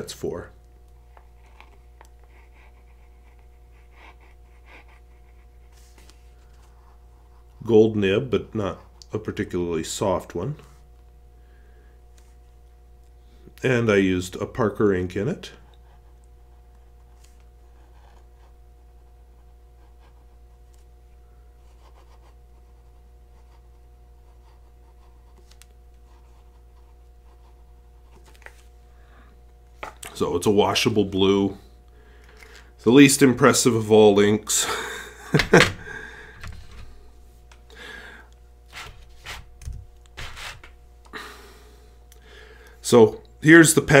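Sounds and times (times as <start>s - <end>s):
steady low hum: 0.0s - 44.0s
pen nib scratching on paper: 1.3s - 7.5s, 15.6s - 20.8s, 21.6s - 28.3s.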